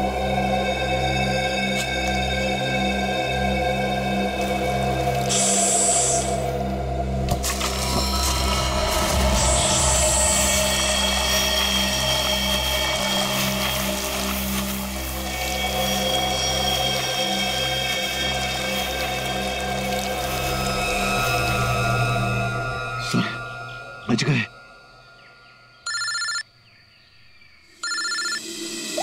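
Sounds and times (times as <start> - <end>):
droning tense music: 0.0 - 29.0
high hissing swells: 5.3 - 6.7.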